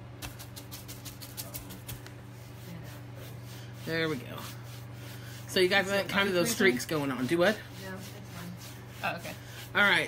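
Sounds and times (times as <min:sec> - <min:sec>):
steady low hum: 0:00.0 - 0:10.0
brush strokes on wooden board: 0:00.9 - 0:10.0.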